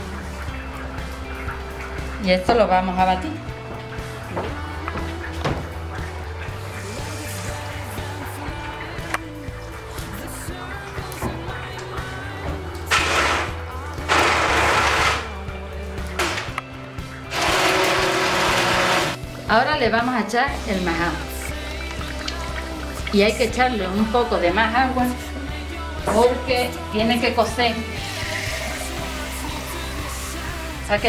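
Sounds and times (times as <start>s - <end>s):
background music: 0.0s - 31.0s
stick blender grinding: 12.9s - 15.3s, 17.3s - 19.2s.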